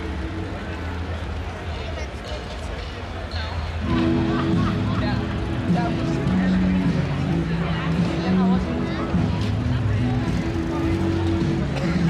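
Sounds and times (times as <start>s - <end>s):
chatter of passers-by: 0.0s - 12.0s.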